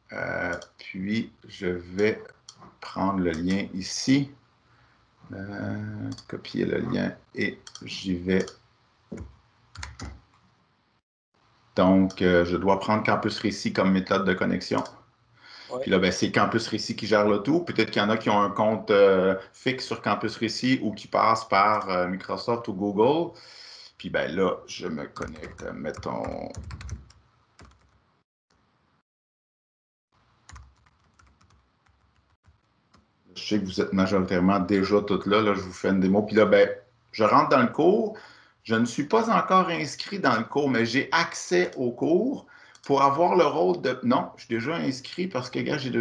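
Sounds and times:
computer keyboard keystrokes: 9.2 - 10.2, 25.2 - 28.0, 30.5 - 33.0.

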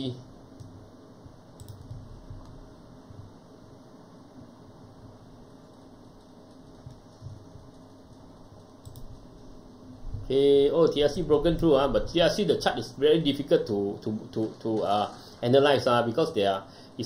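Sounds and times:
faint room hum: 0.0 - 17.0
computer keys clicking: 1.6 - 2.6, 5.5 - 9.3.

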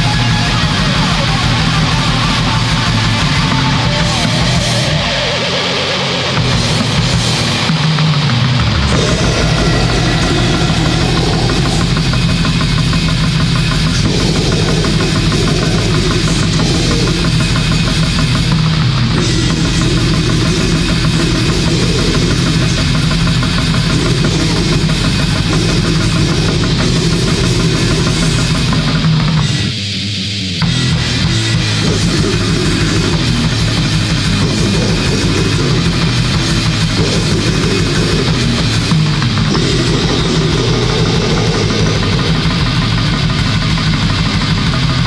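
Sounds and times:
black metal music: 0.0 - 45.0.

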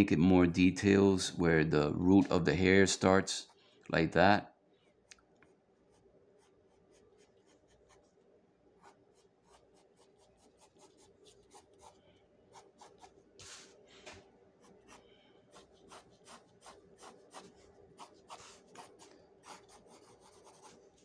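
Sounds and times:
pencil scratching on paper: 5.8 - 8.2, 8.8 - 13.6, 14.6 - 21.0.

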